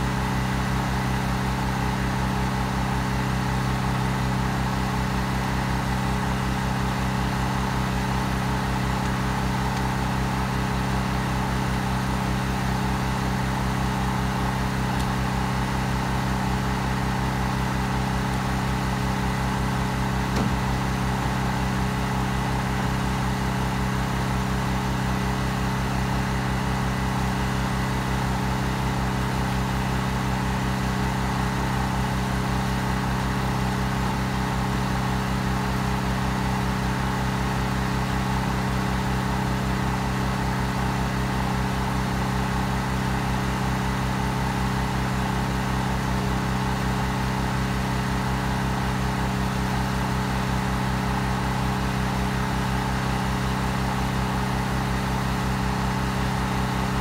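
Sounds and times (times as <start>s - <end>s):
engine idling: 0.0s - 57.0s
brief tap: 20.3s - 20.6s.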